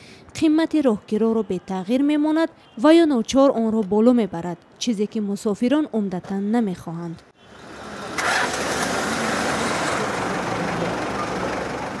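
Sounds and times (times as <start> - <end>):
street traffic: 0.0 - 12.0
vehicle engine running: 8.1 - 12.0.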